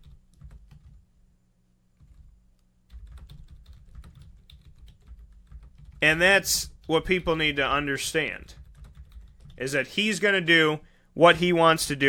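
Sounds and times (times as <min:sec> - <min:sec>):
keyboard typing: 0:00.0 - 0:01.0, 0:02.0 - 0:02.3, 0:02.9 - 0:07.4, 0:08.5 - 0:09.6.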